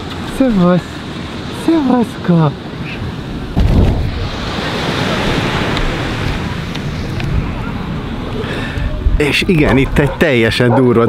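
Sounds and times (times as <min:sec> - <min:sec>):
surf: 0:00.0 - 0:11.0
wind buffeting microphone: 0:02.6 - 0:11.0.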